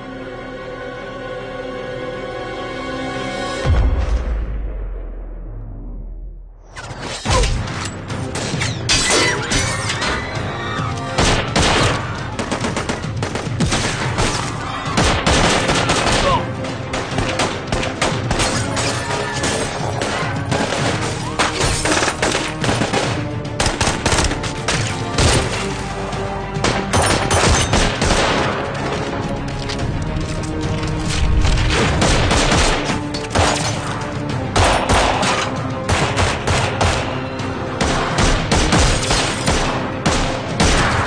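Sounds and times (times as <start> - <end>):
film music score: 0.0 - 41.0
rapid gunfire: 11.2 - 18.5, 21.8 - 24.4, 31.7 - 33.6, 34.6 - 37.2, 37.8 - 41.0.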